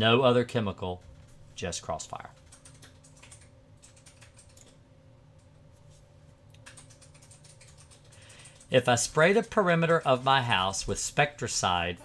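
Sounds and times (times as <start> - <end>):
faint steady hum: 0.0 - 12.0
keyboard typing clicks: 2.4 - 4.8, 6.5 - 8.8.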